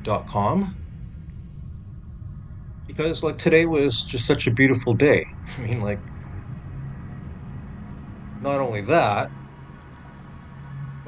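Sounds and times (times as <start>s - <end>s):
faint hum: 0.0s - 11.0s
low rumble: 0.0s - 11.0s.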